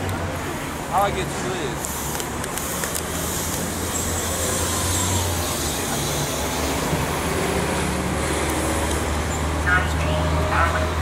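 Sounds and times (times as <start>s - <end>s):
bus engine humming: 0.0s - 11.0s
street traffic noise: 0.0s - 11.0s.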